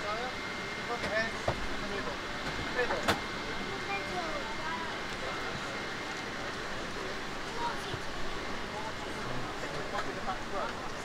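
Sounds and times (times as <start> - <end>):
passengers chattering: 0.0 - 11.0
ventilation hum: 0.0 - 11.0.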